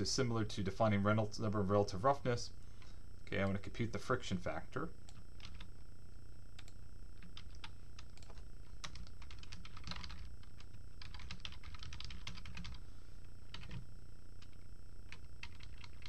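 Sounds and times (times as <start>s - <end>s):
low hum: 0.0s - 16.0s
computer keyboard typing: 5.1s - 5.7s, 6.6s - 12.8s, 13.5s - 13.8s, 14.4s - 16.0s.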